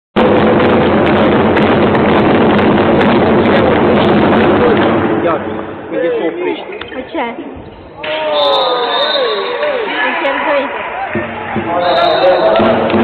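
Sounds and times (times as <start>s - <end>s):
crowd cheering and shouting: 7.8s - 13.0s.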